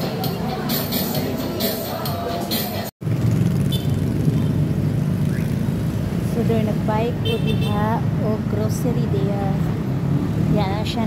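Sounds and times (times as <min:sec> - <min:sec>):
background music: 0:00.0 - 0:02.9
shoppers chatting: 0:00.0 - 0:02.9
road traffic rumble: 0:00.0 - 0:11.0.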